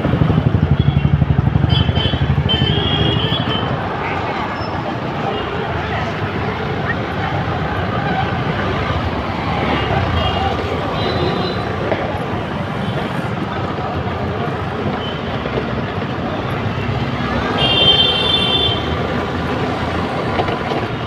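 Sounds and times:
dense street traffic: 0.0 - 21.0
motorbikes passing close by: 0.0 - 21.0.

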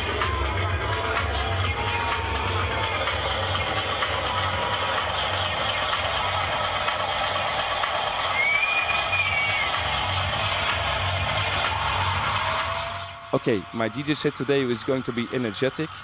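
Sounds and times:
techno over club sound system: 0.0 - 16.0
whistle-like tone: 8.3 - 9.8.

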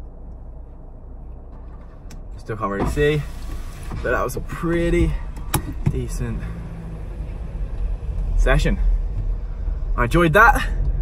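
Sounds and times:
car cabin hum: 0.0 - 11.0
faint background rumble: 0.0 - 11.0.

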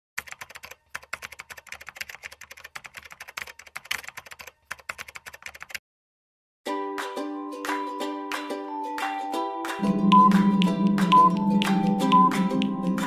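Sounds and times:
rapid keyboard typing: 0.2 - 5.8.

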